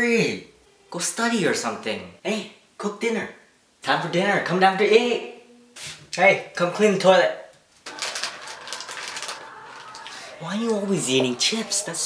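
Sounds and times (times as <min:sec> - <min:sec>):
plastic chip bag crinkling: 0:07.8 - 0:11.1.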